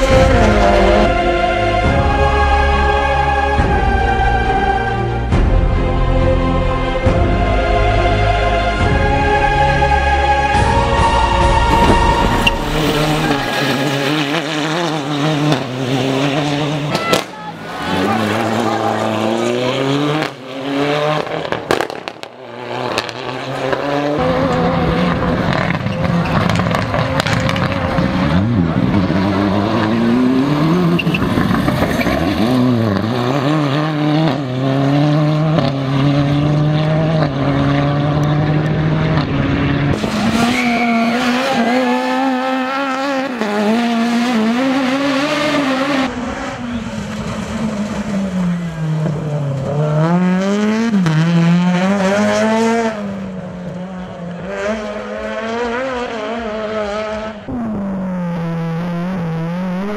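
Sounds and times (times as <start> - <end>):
rally car engines accelerating: 0.0 - 59.9.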